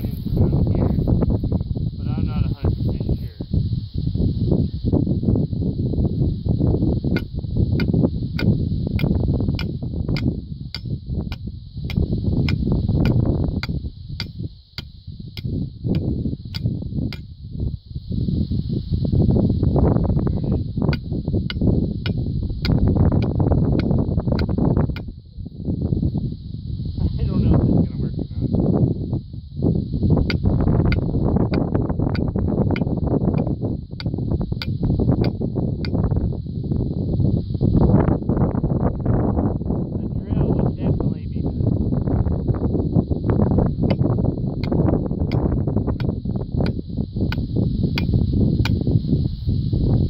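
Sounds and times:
wind rumble on microphone: 0.0s - 50.0s
sledgehammer tapping metal pipe: 7.1s - 17.3s, 30.3s - 36.0s.

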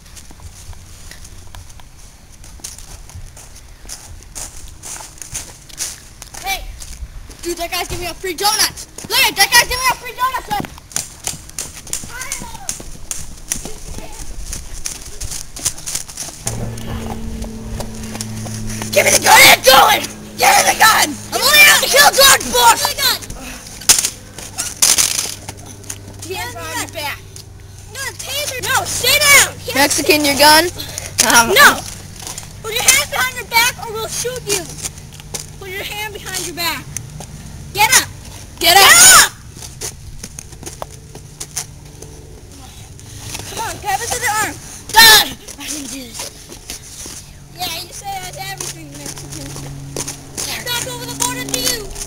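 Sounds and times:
running footsteps: 0.0s - 52.0s
boy shouting: 6.4s - 6.8s, 7.4s - 10.7s, 12.0s - 12.8s, 18.9s - 23.7s, 26.2s - 27.2s, 27.9s - 31.9s, 32.6s - 34.8s, 35.6s - 36.8s, 37.7s - 39.4s, 43.4s - 46.3s, 47.6s - 49.5s, 50.4s - 52.0s.

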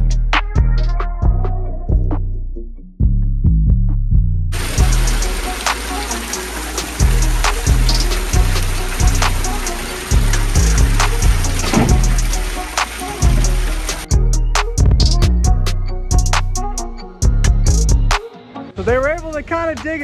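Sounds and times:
background music with steady beat: 0.0s - 20.0s
water pouring and splashing: 4.6s - 14.2s.

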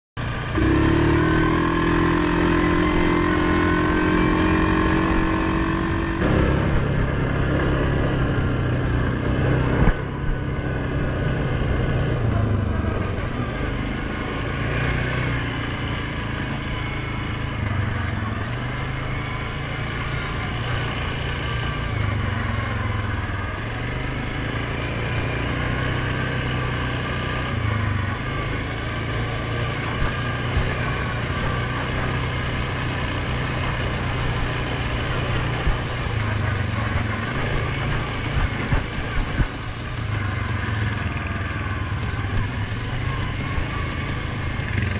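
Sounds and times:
atv engine revving: 0.2s - 44.9s.

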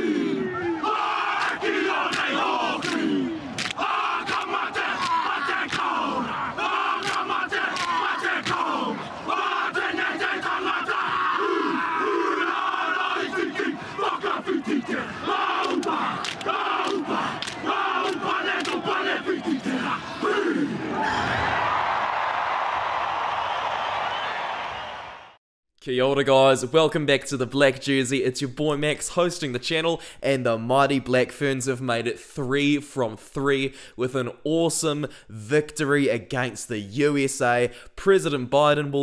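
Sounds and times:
men shouting and chanting in unison: 0.0s - 21.6s
sharp slaps and stamps: 1.4s - 6.0s, 7.0s - 8.6s, 15.6s - 17.6s.

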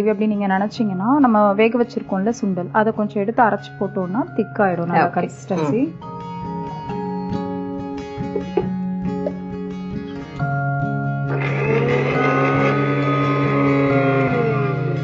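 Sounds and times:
soft plucked guitar music: 0.0s - 15.0s
mixer grinder grinding: 11.3s - 15.0s.

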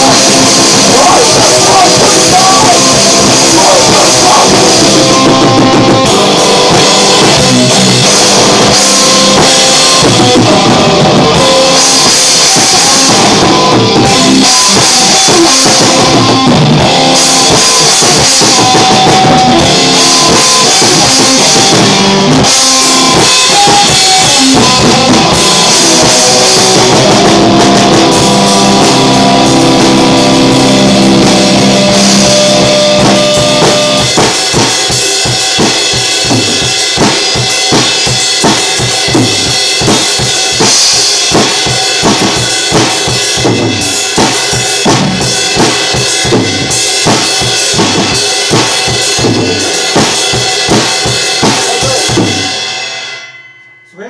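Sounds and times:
drum kit playing heavy beat: 0.0s - 54.0s
sustained instrument chords: 24.4s - 34.1s.

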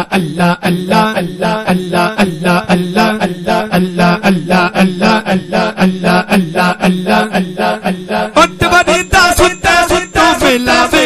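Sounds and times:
man chanting rhythmically: 0.0s - 11.0s.

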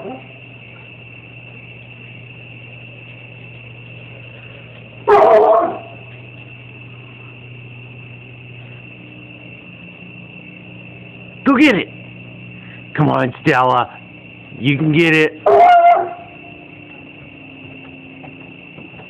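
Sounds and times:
steady low hum: 0.0s - 19.0s
thin high whine: 0.0s - 19.0s
dog yelping: 5.1s - 6.1s, 15.4s - 16.4s.

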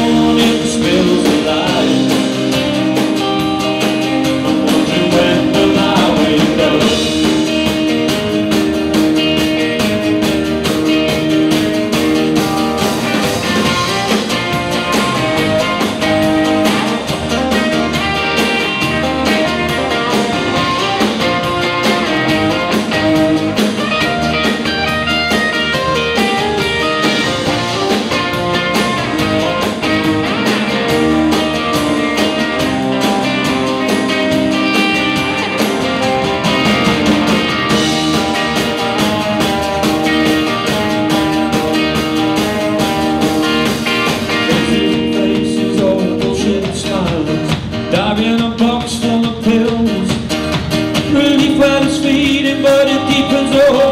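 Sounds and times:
live rock band playing: 0.0s - 53.9s.

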